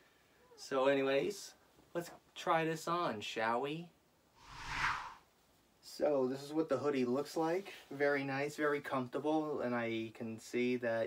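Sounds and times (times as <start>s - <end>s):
whoosh transition effect: 4.4s - 5.2s.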